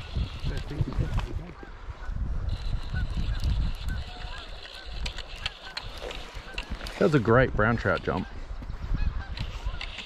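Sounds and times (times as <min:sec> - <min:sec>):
honking bird calls: 0:00.0 - 0:07.2, 0:07.8 - 0:10.0
wind rumble on microphone: 0:00.0 - 0:10.0.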